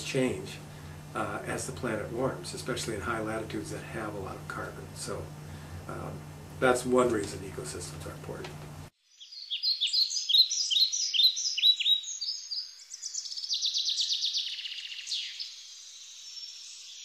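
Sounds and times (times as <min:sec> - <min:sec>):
bird chirping and trilling: 0:09.1 - 0:17.0.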